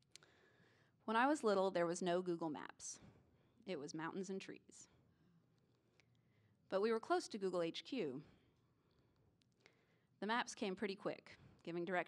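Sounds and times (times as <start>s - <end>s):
woman speaking: 1.1s - 3.0s, 3.6s - 4.9s, 6.7s - 8.3s, 10.2s - 12.0s.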